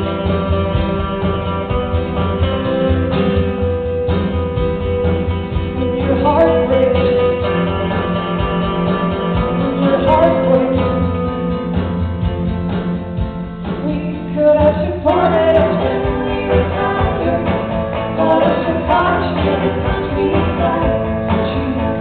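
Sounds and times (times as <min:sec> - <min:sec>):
acoustic guitar strumming: 0:00.0 - 0:22.0
woman singing: 0:05.8 - 0:08.0, 0:09.4 - 0:11.2, 0:13.8 - 0:22.0.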